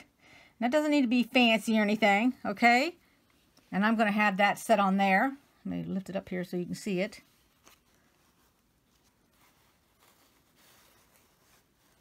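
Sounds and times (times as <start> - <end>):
fabric rustling: 4.8 - 12.0.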